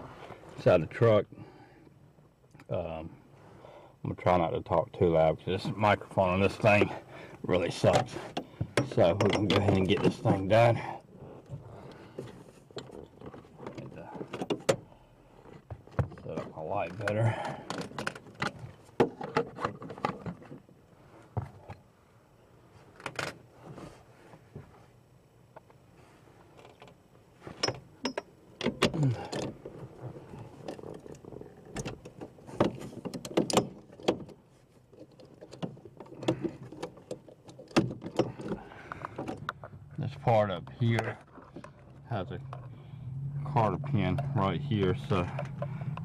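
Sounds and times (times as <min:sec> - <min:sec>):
hand tools and metal parts rattling: 0:05.6 - 0:20.7, 0:26.4 - 0:42.7, 0:43.9 - 0:46.0.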